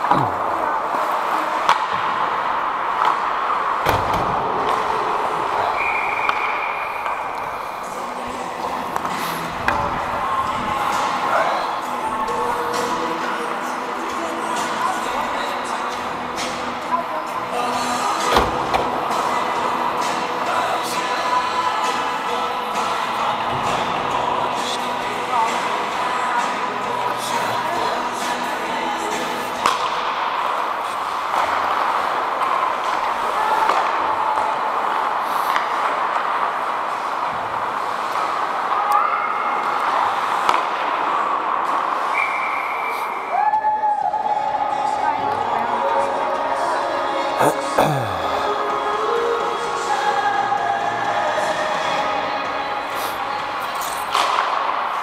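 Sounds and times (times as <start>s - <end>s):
ice skating: 0.0s - 55.0s
sticks puck and boards clacking: 1.0s - 11.4s, 18.1s - 22.1s, 29.1s - 42.2s, 54.0s - 55.0s
players calling indistinctly: 47.4s - 48.9s.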